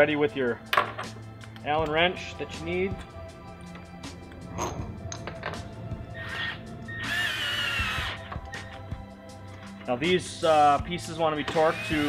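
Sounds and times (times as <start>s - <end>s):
background music: 0.0s - 12.0s
cordless drill motor whining: 6.2s - 8.7s, 11.4s - 12.0s.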